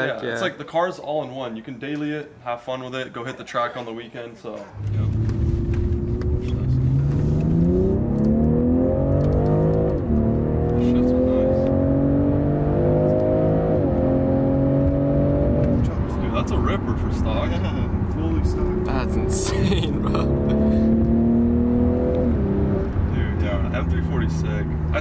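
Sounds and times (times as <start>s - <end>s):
car engine accelerating hard: 4.8s - 25.0s.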